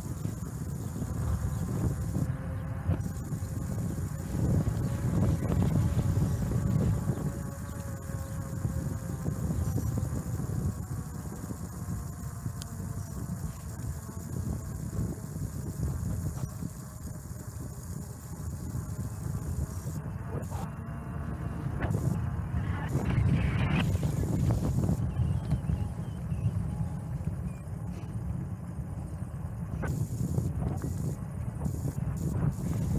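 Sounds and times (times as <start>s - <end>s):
bike tyres rolling on asphalt: 0.0s - 32.9s
wind rumbling on microphone: 0.0s - 32.9s.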